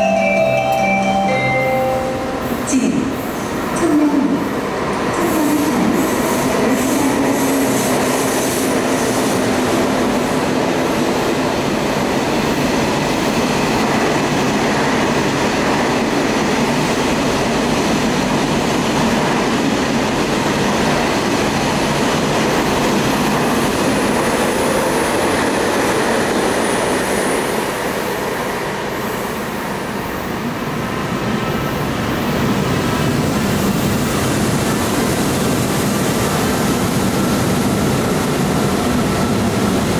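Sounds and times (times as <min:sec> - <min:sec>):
train wheels running on rails: 0:02.4 - 0:39.9.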